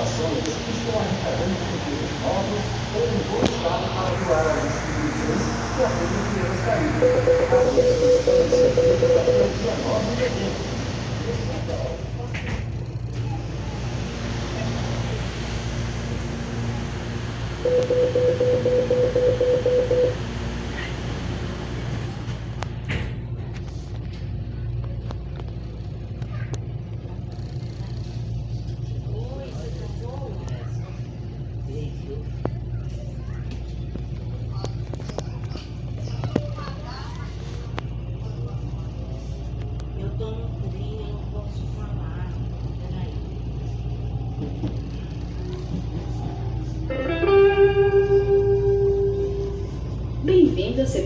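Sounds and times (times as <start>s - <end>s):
faint voices: 0.0s - 51.0s
train running hum: 0.0s - 51.0s
loud steady tone: 2.8s - 12.1s, 13.6s - 21.6s, 46.8s - 51.0s.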